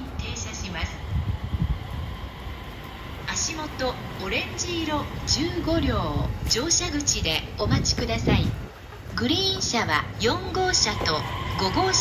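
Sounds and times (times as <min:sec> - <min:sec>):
train rumbling through snow: 0:00.0 - 0:12.0.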